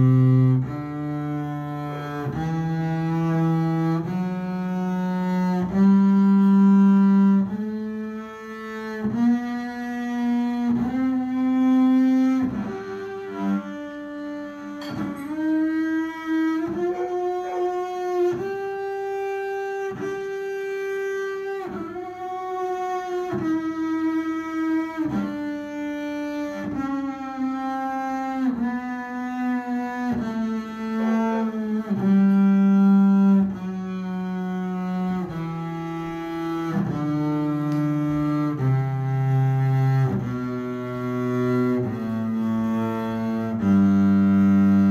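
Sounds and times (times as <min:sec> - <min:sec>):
bowed double bass scale: 0:00.0 - 0:44.9.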